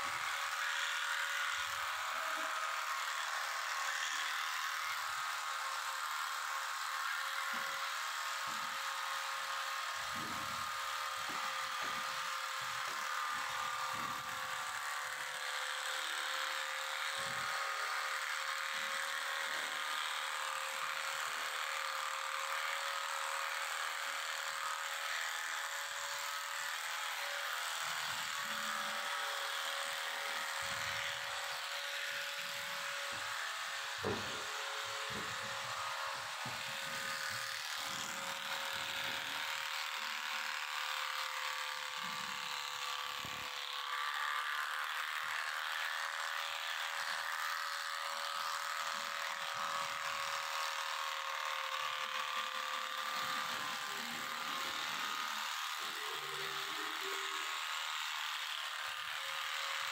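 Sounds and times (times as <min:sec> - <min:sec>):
electric clippers buzzing: 0:00.0 - 0:59.9.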